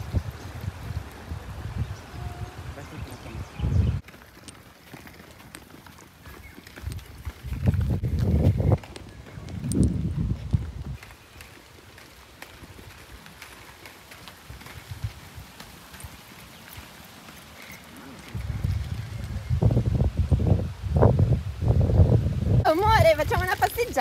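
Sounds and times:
footsteps on asphalt: 0:04.0 - 0:19.2.

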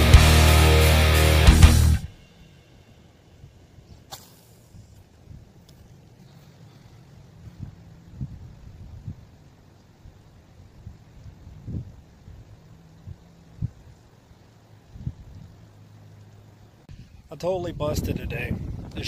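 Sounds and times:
fishing rod cast swish: 0:04.1 - 0:04.8
wind buffeting microphone: 0:07.2 - 0:14.1, 0:14.8 - 0:15.6, 0:16.9 - 0:19.0.

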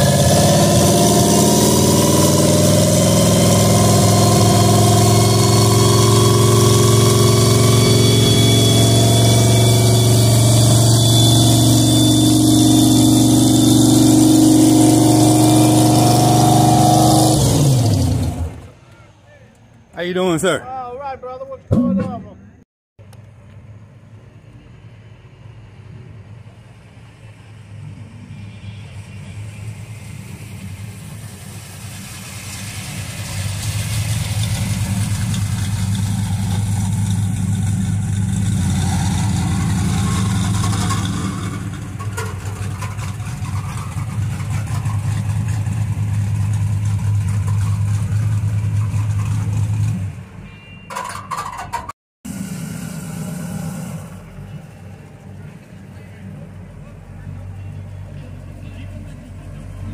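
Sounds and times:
second car engine running: 0:00.0 - 0:18.8, 0:23.0 - 0:50.4, 0:51.3 - 0:59.9
car engine running at low speed: 0:23.0 - 0:50.1, 0:52.3 - 0:59.9.

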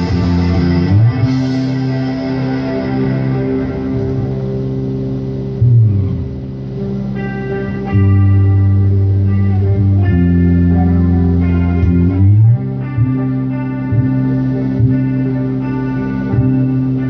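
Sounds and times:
backing music with guitar: 0:00.0 - 0:17.0
electric bass guitar low notes: 0:00.0 - 0:17.0.

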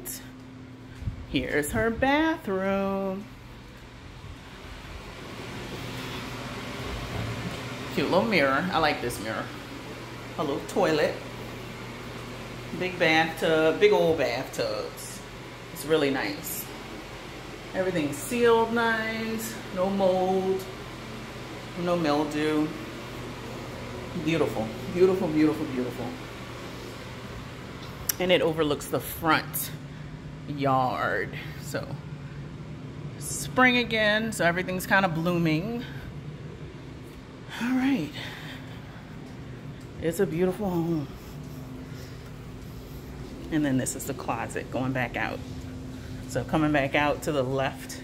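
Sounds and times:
fan running: 0:00.0 - 0:48.0.

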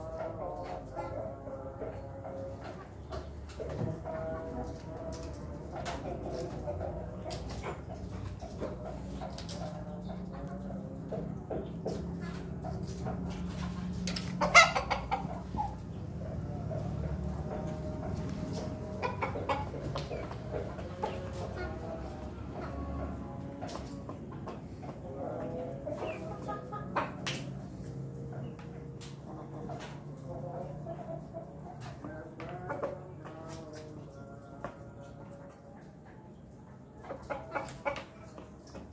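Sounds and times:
rooster clucking: 0:00.0 - 0:33.7, 0:36.8 - 0:38.9.

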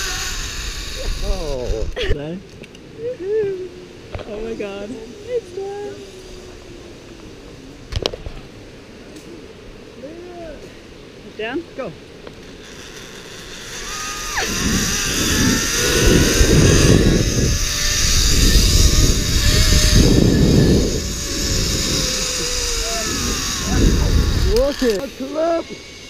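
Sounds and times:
zip line pulleys whining on cable: 0:00.0 - 0:01.9, 0:04.4 - 0:07.4, 0:12.3 - 0:26.0
wind rushing over microphone: 0:00.0 - 0:02.0, 0:13.8 - 0:26.0.

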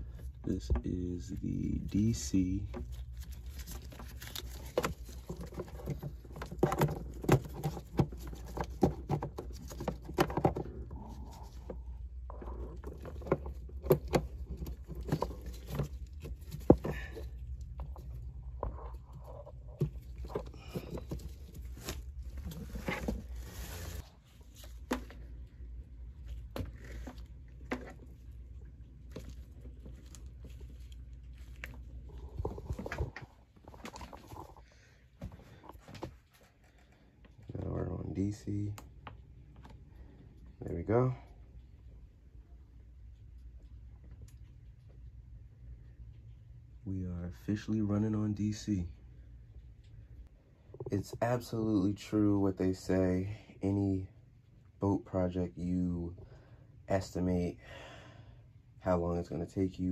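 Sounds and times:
electrical cords being handled: 0:00.0 - 0:39.9.

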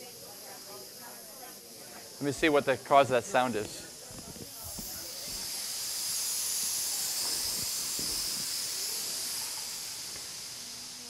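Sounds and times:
loud high hiss: 0:00.0 - 0:11.0.

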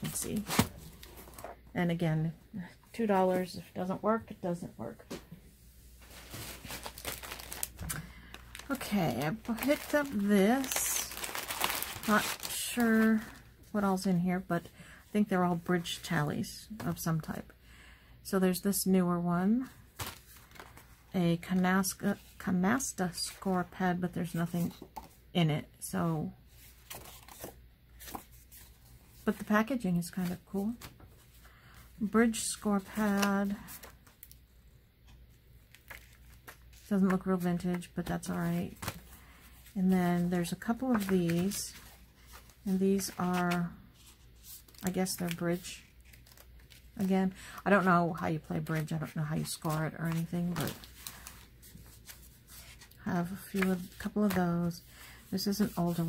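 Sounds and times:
plastic bag crinkling: 0:06.0 - 0:13.3.

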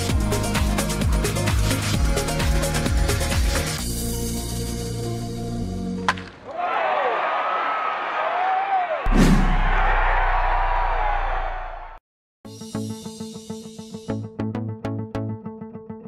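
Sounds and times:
swirling whoosh: 0:09.1 - 0:09.8
impact and deep boom: 0:09.1 - 0:10.9
plucked-string music: 0:12.7 - 0:16.0.

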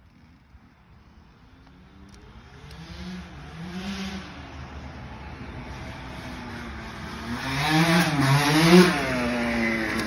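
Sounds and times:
vehicle engine revving: 0:02.1 - 0:04.7, 0:05.8 - 0:10.0.

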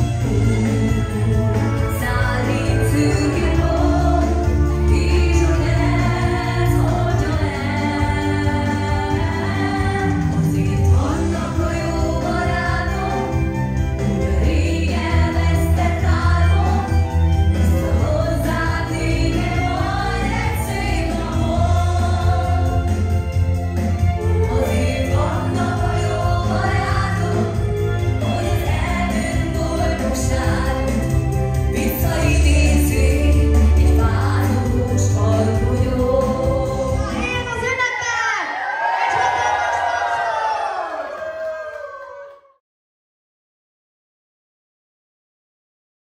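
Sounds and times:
backing track with bass line: 0:00.0 - 0:37.4
woman singing into microphone: 0:00.3 - 0:13.5, 0:24.5 - 0:37.7
party guests cheering and whooping: 0:37.9 - 0:42.6.

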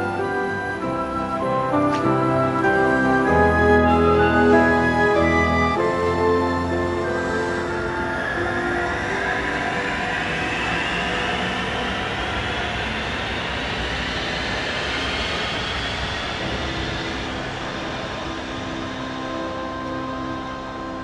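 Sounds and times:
train motor whine rising: 0:00.0 - 0:21.0
wheels rumbling on rails: 0:00.0 - 0:21.0.

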